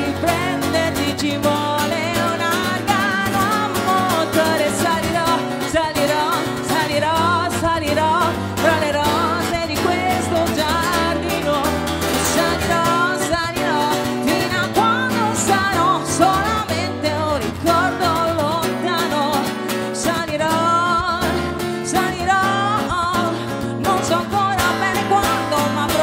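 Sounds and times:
strummed acoustic guitar: 0.0s - 26.0s
woman singing pop song: 0.0s - 26.0s.

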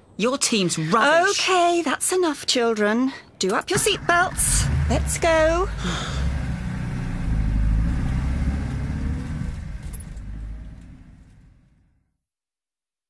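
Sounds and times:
car engine pulling away: 3.7s - 12.0s.

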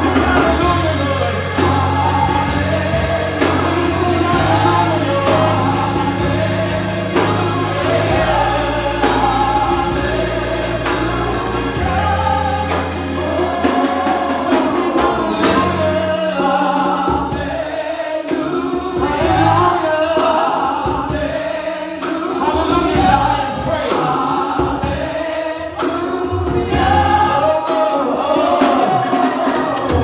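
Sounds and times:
instrumental accompaniment with beat: 0.0s - 30.0s
man singing lead: 0.0s - 30.0s
women singing backing vocals: 0.0s - 30.0s.

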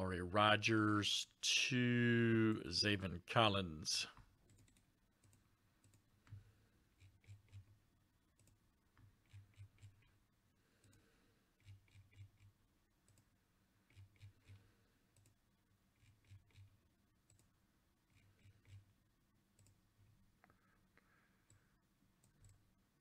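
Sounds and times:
computer mouse clicks: 4.4s - 7.7s, 8.3s - 10.2s, 11.6s - 13.3s, 13.9s - 15.4s, 16.0s - 17.5s, 18.1s - 18.9s, 19.5s - 19.8s, 22.2s - 22.6s.

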